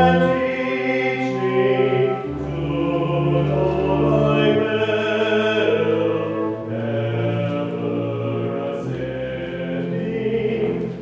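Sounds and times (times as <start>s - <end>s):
voices singing a slow hymn: 0.0s - 11.0s.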